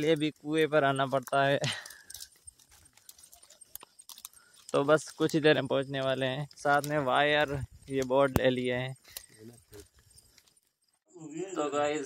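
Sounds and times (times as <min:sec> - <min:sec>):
footsteps on dirt path: 0:01.0 - 0:05.4.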